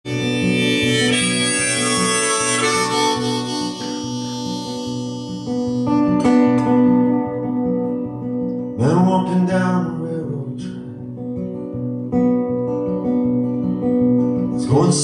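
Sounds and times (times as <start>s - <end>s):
harmonica sustained notes: 0.0s - 7.8s
strummed acoustic guitar: 0.0s - 15.0s.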